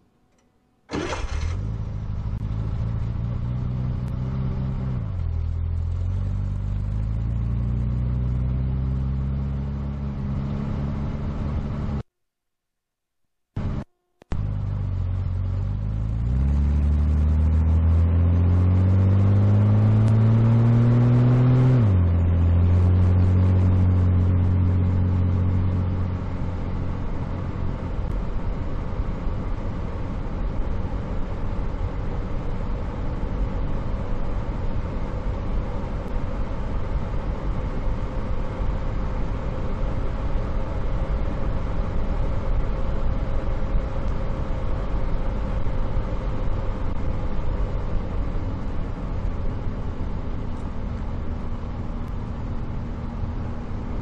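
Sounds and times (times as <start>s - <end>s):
road and wind noise: 0.0s - 12.0s, 13.6s - 54.0s
car engine pulling away: 0.9s - 12.0s, 13.6s - 54.0s.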